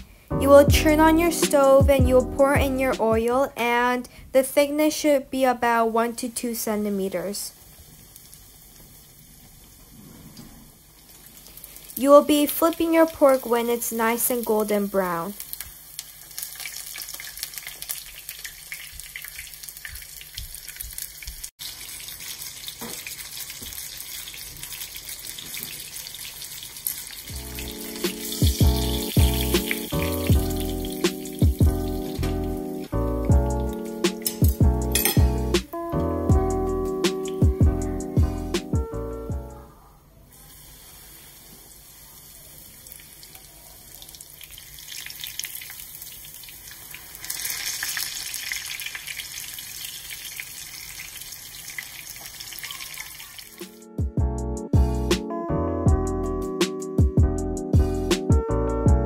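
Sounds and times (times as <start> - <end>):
background music: 0.0 - 3.8, 27.3 - 39.7, 53.6 - 59.0
cutlet sizzling in oil: 7.5 - 35.8, 40.3 - 53.8.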